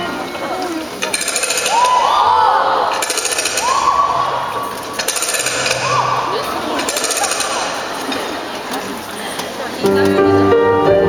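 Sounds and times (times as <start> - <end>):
rapid machine-gun-like rattle: 1.0 - 1.9, 3.0 - 3.9, 4.8 - 6.0, 6.7 - 8.0
audience shrieks: 1.5 - 7.8.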